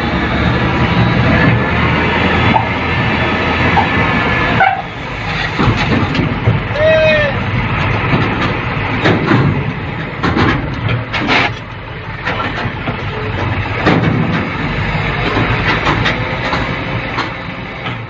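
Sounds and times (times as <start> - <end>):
truck diesel engine running: 0.0 - 18.0
clattering knocks: 5.4 - 6.7, 7.8 - 18.0.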